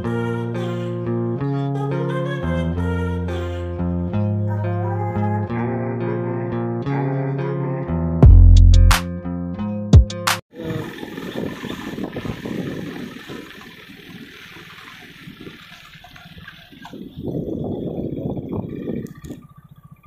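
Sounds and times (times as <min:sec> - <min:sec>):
guitar music: 0:00.0 - 0:10.4
wind rushing on microphone: 0:10.6 - 0:20.0.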